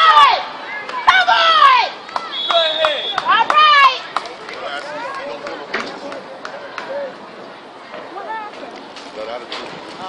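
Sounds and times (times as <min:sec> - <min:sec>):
spectators shouting: 0:00.0 - 0:04.2.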